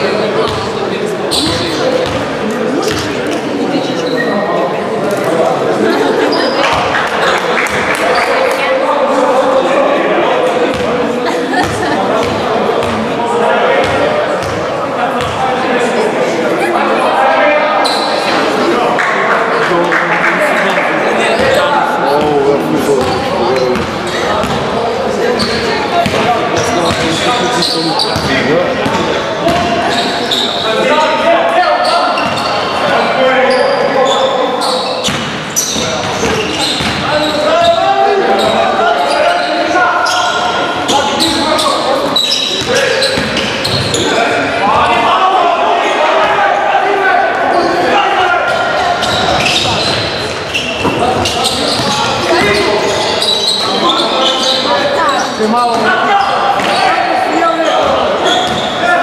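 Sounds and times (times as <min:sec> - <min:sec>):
voices calling out: 0:00.0 - 0:59.0
basketball bouncing on court floor: 0:02.0 - 0:03.1, 0:23.0 - 0:24.7, 0:25.4 - 0:27.2, 0:35.0 - 0:37.0, 0:49.0 - 0:52.6.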